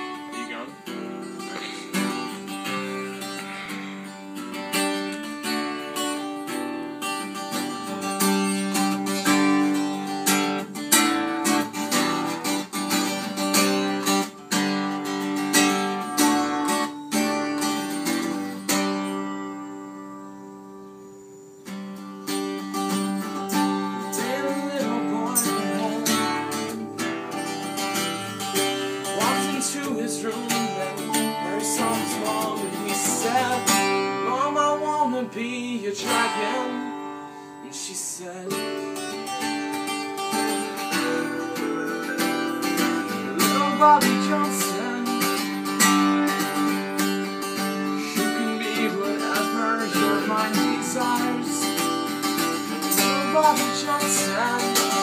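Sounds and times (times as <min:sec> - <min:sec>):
strummed acoustic guitar: 0:00.0 - 0:55.0.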